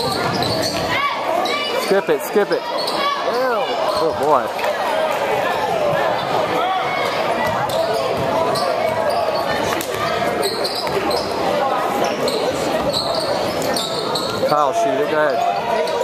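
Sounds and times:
crowd chatter in a hall: 0.0s - 16.0s.

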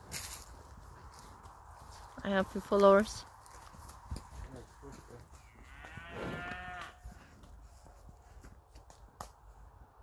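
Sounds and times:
cow mooing: 5.5s - 7.0s.

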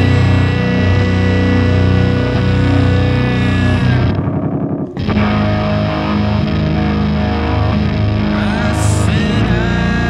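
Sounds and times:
distorted electric guitar and bass: 0.0s - 10.0s.

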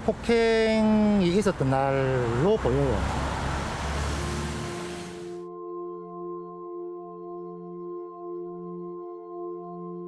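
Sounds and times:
traffic rumble with hiss: 0.0s - 5.3s
soft sustained music tones: 4.2s - 10.0s.

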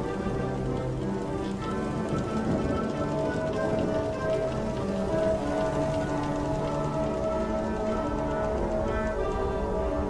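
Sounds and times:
slow ambient music: 0.0s - 10.0s
water noise: 0.0s - 10.0s.

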